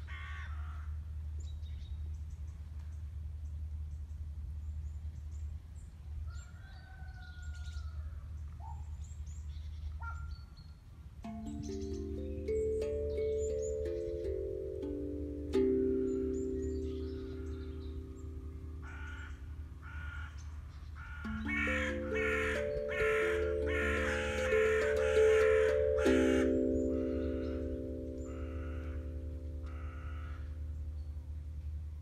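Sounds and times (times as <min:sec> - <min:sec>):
crows cawing: 0:00.0 - 0:01.0, 0:18.8 - 0:30.5
hand-played drum ringing notes: 0:11.2 - 0:19.1, 0:21.2 - 0:30.8.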